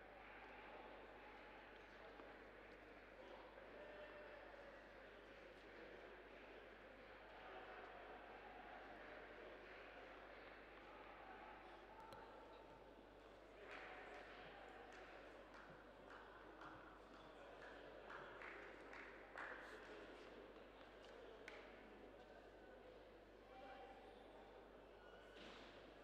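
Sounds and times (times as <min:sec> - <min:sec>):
faint low voices: 0:00.0 - 0:26.0.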